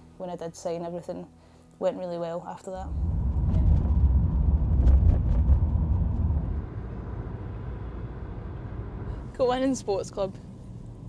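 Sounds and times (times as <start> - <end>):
car cabin road rumble: 2.8 - 11.0.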